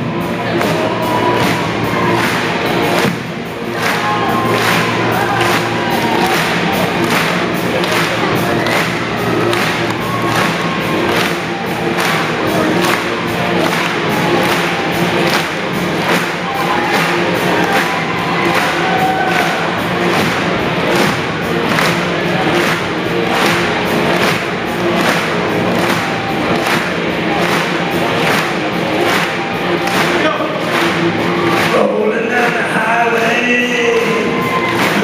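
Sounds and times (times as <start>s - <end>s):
crowd clapping along: 0.0s - 35.0s
drum beat: 0.0s - 35.0s.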